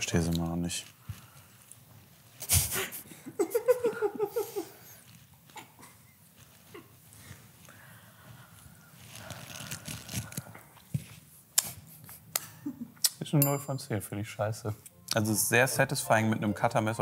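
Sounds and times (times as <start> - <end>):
person laughing: 2.8 - 4.9
scraping and tearing orange peel: 9.0 - 10.4.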